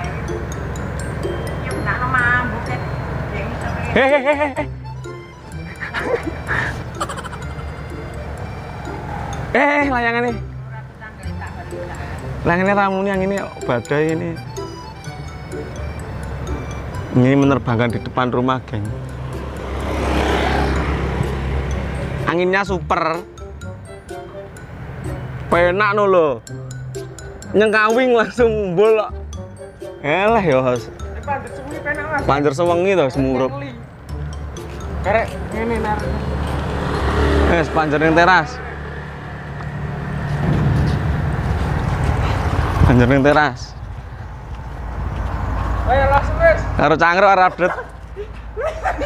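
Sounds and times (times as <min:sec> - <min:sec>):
vehicle passing by: 0:00.0 - 0:09.9, 0:14.6 - 0:22.9, 0:32.3 - 0:49.0
wind buffeting microphone: 0:40.2 - 0:45.9.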